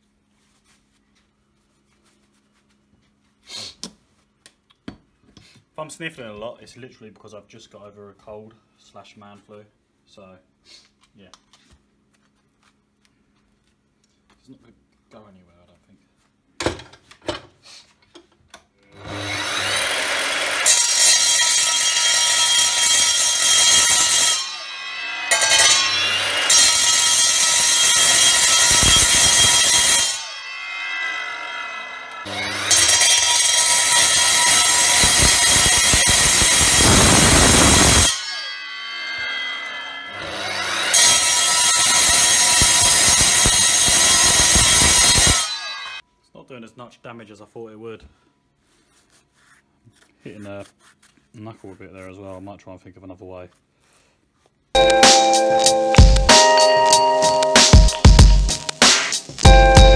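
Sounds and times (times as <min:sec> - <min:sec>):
mitre saw cutting metal: 0:18.9 - 0:46.0.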